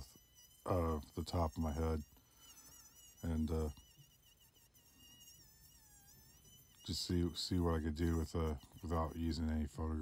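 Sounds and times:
rotary tool whining: 0:00.0 - 0:10.0.

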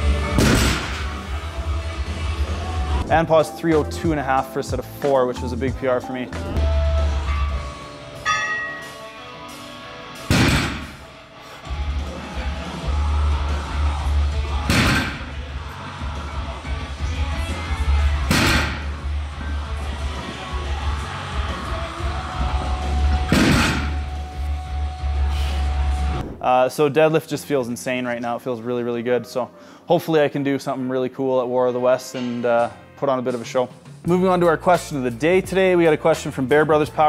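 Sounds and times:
music with heavy bass: 0:00.0 - 0:09.0, 0:10.2 - 0:26.3.

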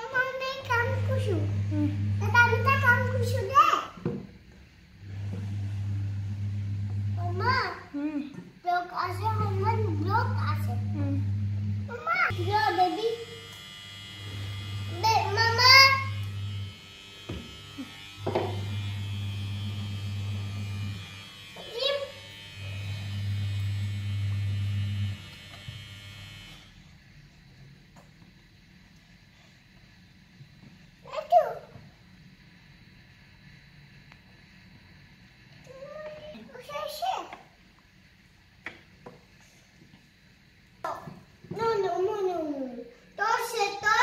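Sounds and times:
low steady hum: 0:00.2 - 0:03.3, 0:09.1 - 0:21.5.

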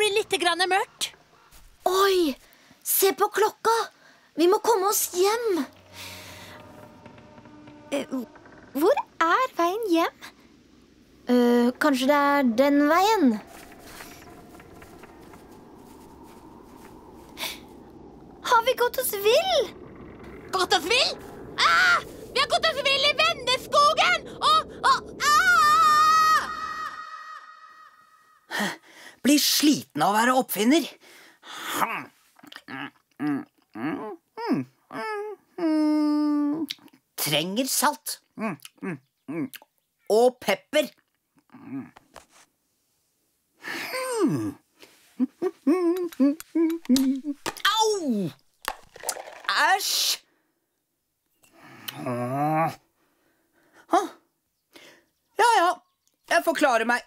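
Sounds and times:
faint rustle: 0:04.9 - 0:24.4, 0:41.8 - 0:43.4
high-pitched cartoon voices calling: 0:20.5 - 0:28.4.

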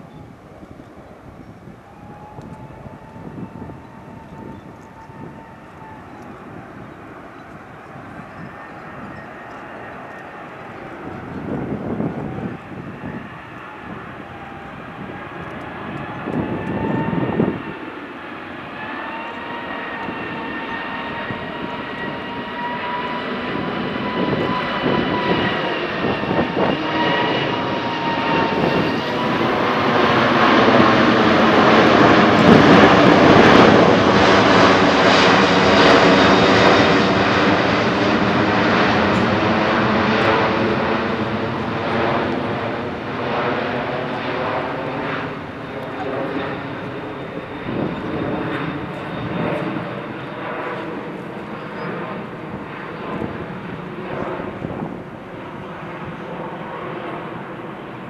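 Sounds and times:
high whine of engine fans: 0:00.0 - 0:58.0
jet airliner flying overhead: 0:00.0 - 0:58.0.

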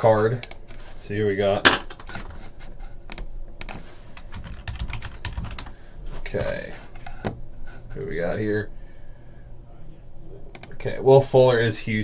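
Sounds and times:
keyboard typing: 0:03.1 - 0:05.8, 0:10.5 - 0:10.8.

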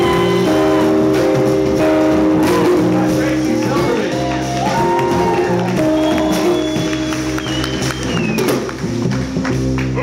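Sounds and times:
electric violin: 0:00.0 - 0:03.0
electric guitar: 0:00.0 - 0:10.0.

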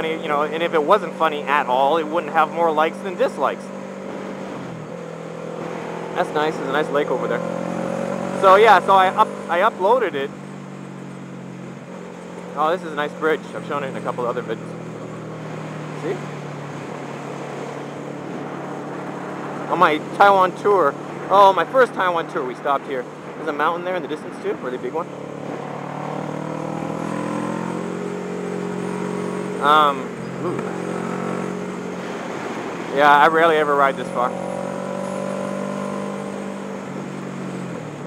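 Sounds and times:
motorcycle engine cruising: 0:00.0 - 0:38.0
road noise: 0:00.0 - 0:38.0.

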